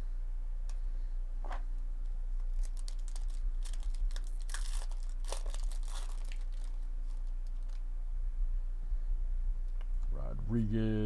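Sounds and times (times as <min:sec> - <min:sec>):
plastic wrapper tearing and crinkling: 0:02.4 - 0:07.8.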